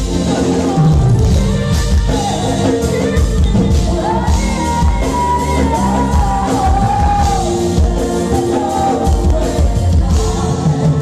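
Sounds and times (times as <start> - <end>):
live band playing: 0.0 - 11.0
steady drum beat: 0.0 - 11.0
woman singing: 0.0 - 11.0.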